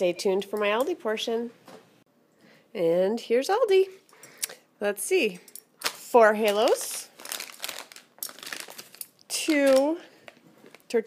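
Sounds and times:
plastic packaging crinkling: 5.8s - 11.0s.

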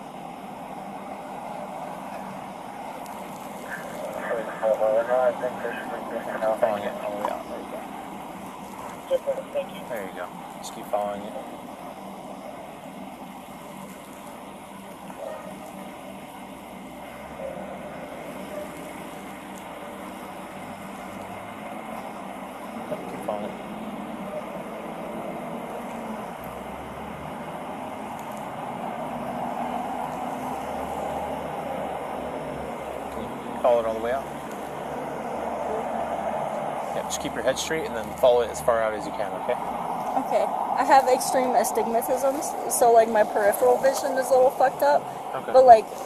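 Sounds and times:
street vehicle noise: 0.0s - 46.0s
faint voices: 1.7s - 13.1s, 21.8s - 26.7s, 33.0s - 46.0s.

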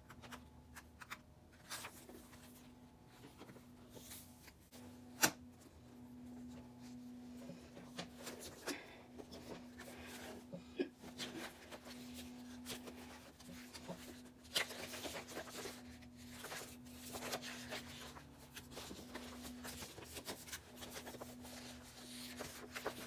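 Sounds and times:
faint steady hum: 0.0s - 23.0s
paper pages flipping: 0.1s - 5.4s, 11.1s - 23.0s.

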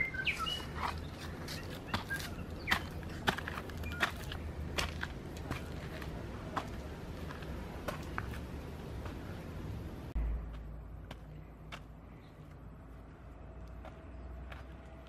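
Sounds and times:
footsteps scuffing on dirt: 0.1s - 9.4s, 10.4s - 15.0s
low steady rumble: 1.0s - 15.0s.

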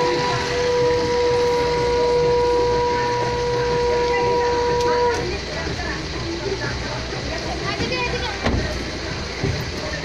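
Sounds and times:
conch shell blown: 0.0s - 5.4s
people talking: 2.8s - 10.0s.

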